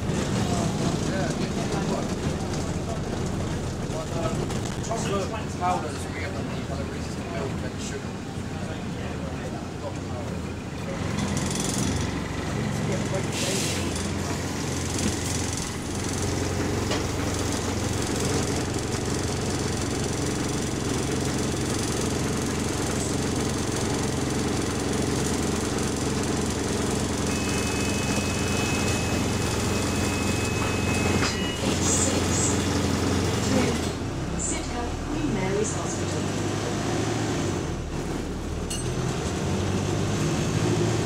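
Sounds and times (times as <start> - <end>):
diesel bus engine idling with rattle: 0.0 - 41.0.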